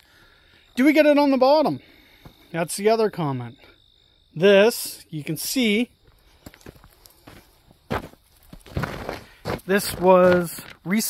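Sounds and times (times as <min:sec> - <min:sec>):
footsteps on gritty asphalt: 0:06.1 - 0:10.9.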